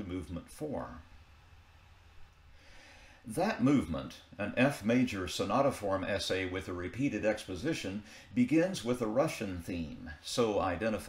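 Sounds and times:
steady low hum: 0:00.0 - 0:11.0
faint intake of breath: 0:02.5 - 0:03.3, 0:08.0 - 0:08.4.

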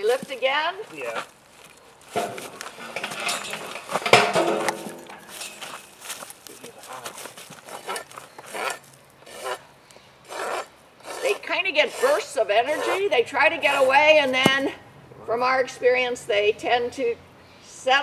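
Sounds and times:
hoof rasp scraping hoof: 0:00.0 - 0:14.8.

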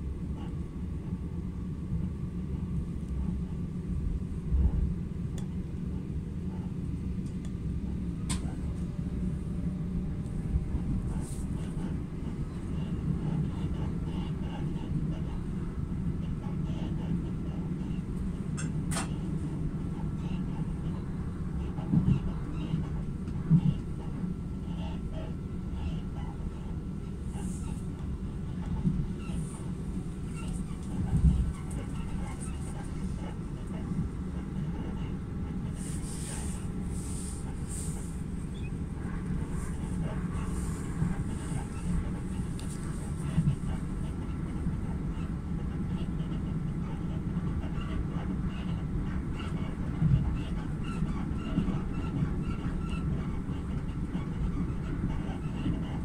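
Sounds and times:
train wheels rumbling: 0:25.5 - 0:48.4.

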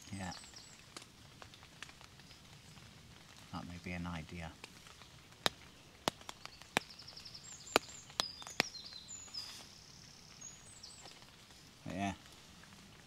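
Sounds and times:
raindrops tapping on tent: 0:00.0 - 0:13.0.

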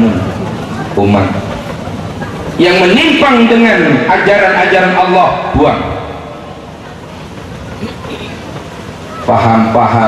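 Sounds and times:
faint voices: 0:00.0 - 0:10.0
steady rumbling background noise: 0:00.0 - 0:10.0.

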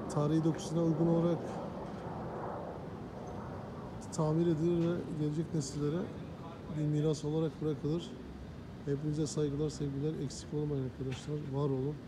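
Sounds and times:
low traffic hum: 0:00.0 - 0:12.0.

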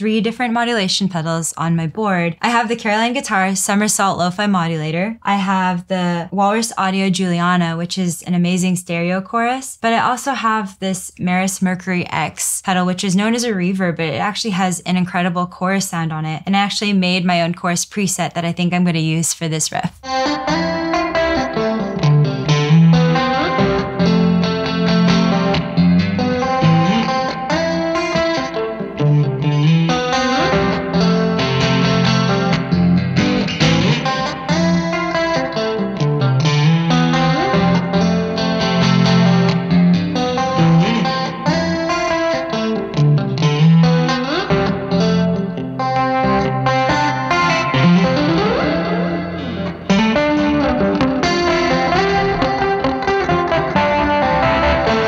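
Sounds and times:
electric guitar with chorus effect: 0:20.0 - 0:55.0.

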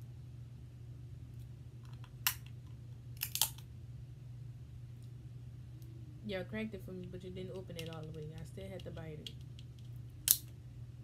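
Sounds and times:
low hum: 0:00.0 - 0:11.0
crab shell cracking: 0:03.2 - 0:03.6.

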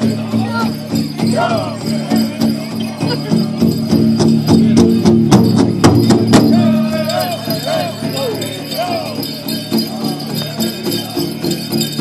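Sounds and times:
dance bells jingling: 0:00.0 - 0:12.0
drum group singing: 0:00.0 - 0:12.0
steady drumbeat: 0:00.0 - 0:12.0.

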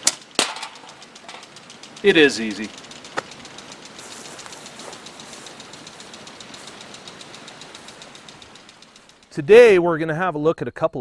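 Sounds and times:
sharp click: 0:00.0 - 0:09.4
faint fast ticking: 0:00.0 - 0:10.2
outdoor background hiss: 0:00.0 - 0:11.0.

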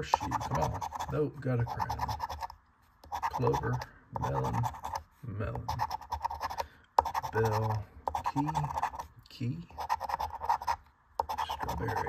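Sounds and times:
coin scratching lottery ticket: 0:00.0 - 0:05.0, 0:05.6 - 0:09.0, 0:09.8 - 0:12.0.

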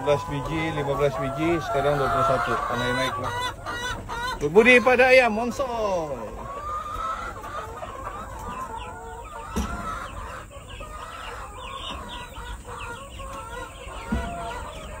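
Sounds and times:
chicks peeping: 0:00.0 - 0:15.0
lower chicken calls: 0:00.0 - 0:15.0.

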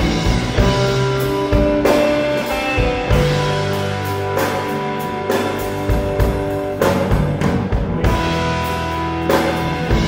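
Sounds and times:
electric guitar sustained notes: 0:00.0 - 0:10.0
rock band playing: 0:00.0 - 0:10.0.

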